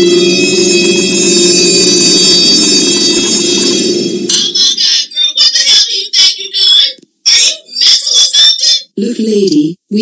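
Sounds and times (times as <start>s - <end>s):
high metallic ringing: 0.0s - 4.7s.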